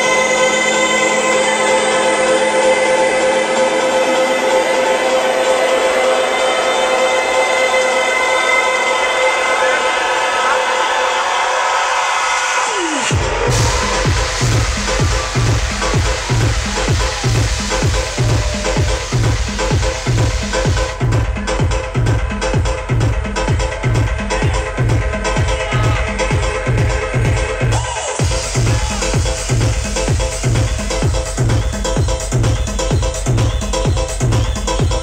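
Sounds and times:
electronic house music: 0.0 - 35.0
noise sweep: 11.6 - 22.2
held synth chords: 13.1 - 32.6.

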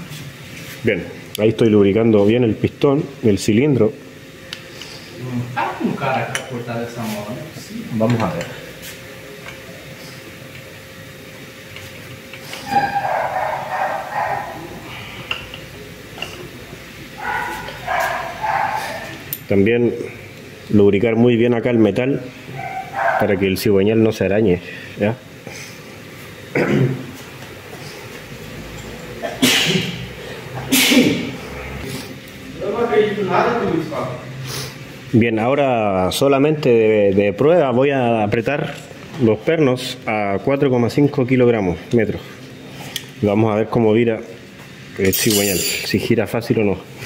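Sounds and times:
light metallic clink: 45.0 - 45.9.

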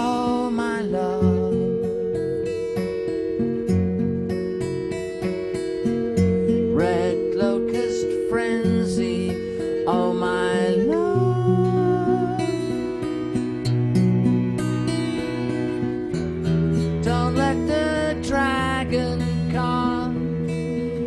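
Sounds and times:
acoustic guitar strumming: 0.0 - 21.0
cello: 0.0 - 21.0
musical saw wavering note: 0.0 - 21.0.

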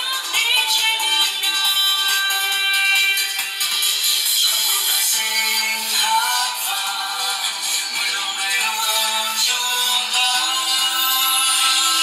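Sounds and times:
recorded music: 0.0 - 12.0.

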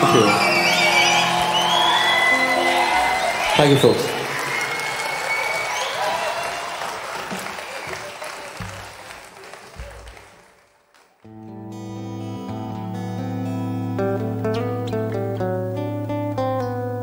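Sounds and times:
acoustic guitar playing: 0.0 - 3.5, 11.3 - 17.0
whistles and cheers: 0.0 - 9.0
audience applauding: 0.0 - 11.4.

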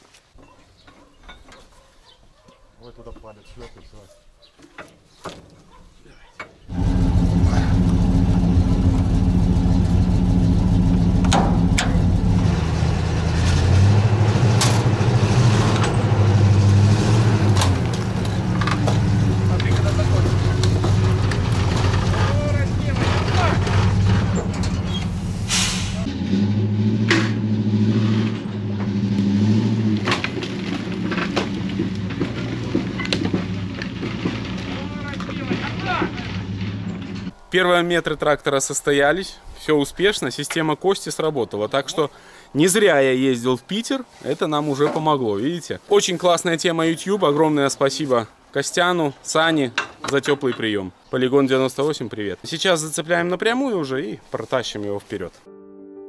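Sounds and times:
truck engine under load: 6.7 - 37.4.

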